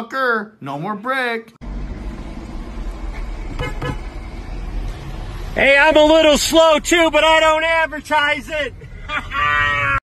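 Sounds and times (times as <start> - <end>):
traffic rumble: 1.6 - 10.0
vehicle horn toots: 3.5 - 4.2.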